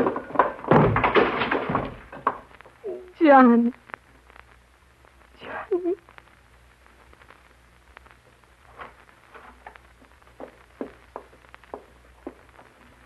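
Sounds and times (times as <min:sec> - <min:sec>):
footsteps sound effect: 0:08.7 - 0:13.0.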